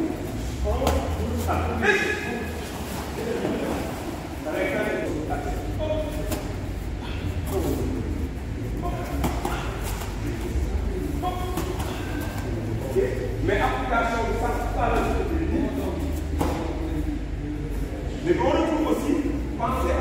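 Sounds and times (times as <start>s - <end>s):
man speaking in a hall: 0.0s - 6.4s, 7.0s - 20.0s
steady low hum: 0.0s - 20.0s.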